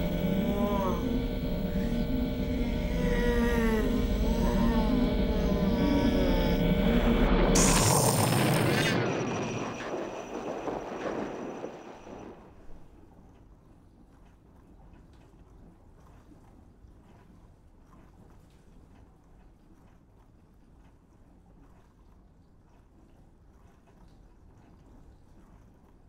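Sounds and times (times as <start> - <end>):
warbling gliding electronic tones: 0.0 - 12.4
low hum: 0.0 - 13.0
loud rush of hiss: 3.6 - 12.0.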